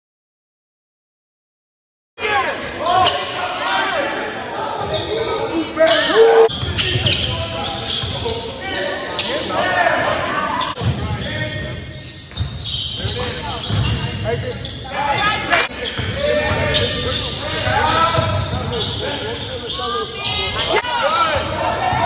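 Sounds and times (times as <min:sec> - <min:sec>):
players calling out: 0:05.9 - 0:06.5.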